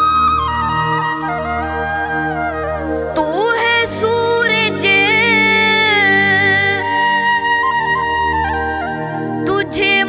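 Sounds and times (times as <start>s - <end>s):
flute playing slow melody: 0.0s - 5.0s, 6.2s - 10.0s.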